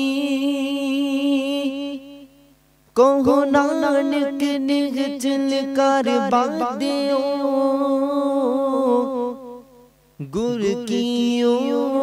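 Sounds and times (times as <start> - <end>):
man singing long note: 0.0 - 12.0.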